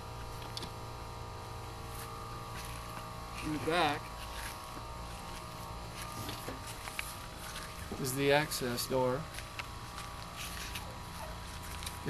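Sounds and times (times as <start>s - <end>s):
buzzing hum: 0.0s - 12.0s.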